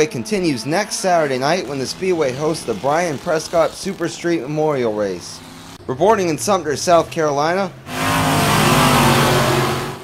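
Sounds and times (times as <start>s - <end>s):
race car engines at speed: 0.0s - 10.0s.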